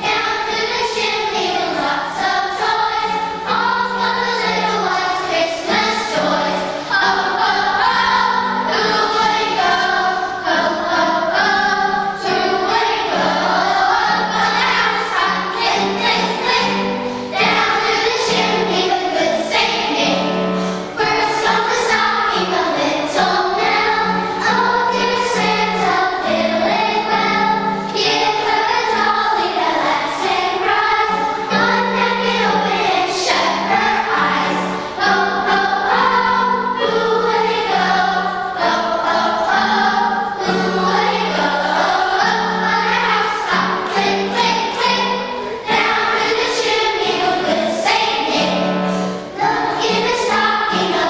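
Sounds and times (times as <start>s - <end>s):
children's choir singing: 0.0s - 51.0s.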